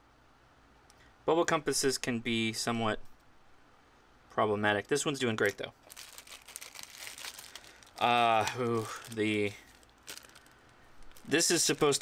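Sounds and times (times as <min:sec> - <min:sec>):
plastic bag crinkling: 0:05.8 - 0:12.0.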